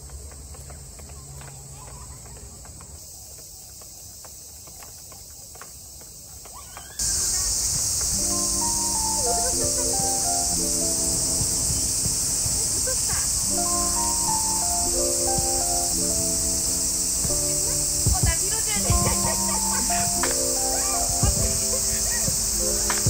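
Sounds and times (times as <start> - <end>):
high-pitched insect chorus: 1.8 - 23.0
background music with held notes: 8.0 - 23.0.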